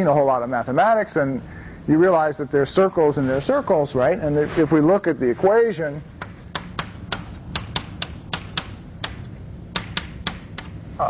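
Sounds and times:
chalk tapping on blackboard: 0:06.2 - 0:10.8.

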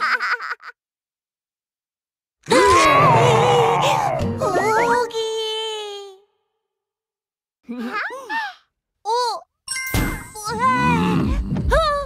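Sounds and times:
bright chime: 0:09.7 - 0:10.5.

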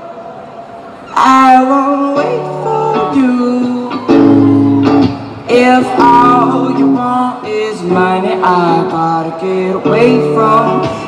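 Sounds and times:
man singing: 0:01.1 - 0:04.6, 0:05.4 - 0:11.0
electric guitar strumming chords: 0:01.3 - 0:11.0.

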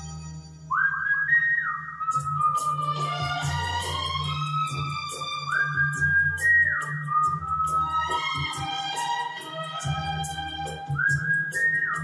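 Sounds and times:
karaoke backing track: 0:00.0 - 0:12.0
man whistling a melody: 0:00.7 - 0:03.5, 0:04.7 - 0:08.7, 0:10.8 - 0:12.0.

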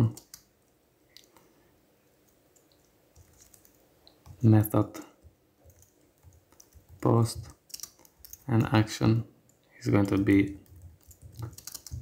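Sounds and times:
keyboard keystrokes: 0:10.0 - 0:12.0.

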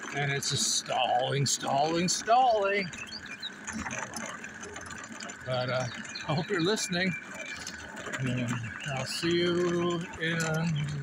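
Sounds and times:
lawnmower wheels ratcheting clicks: 0:00.0 - 0:11.0.

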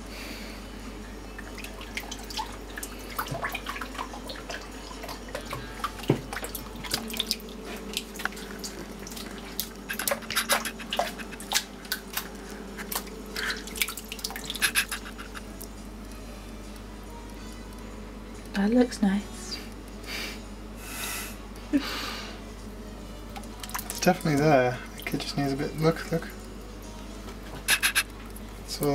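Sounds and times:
steady low hum: 0:00.0 - 0:28.9
water splashes and drips in bowl: 0:01.4 - 0:12.0, 0:12.9 - 0:14.9, 0:23.4 - 0:26.1.

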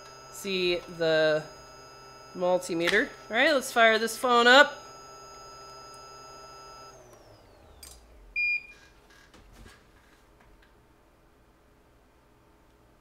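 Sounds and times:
small clicks: 0:07.0 - 0:08.1
short electronic beep: 0:08.4 - 0:08.8.

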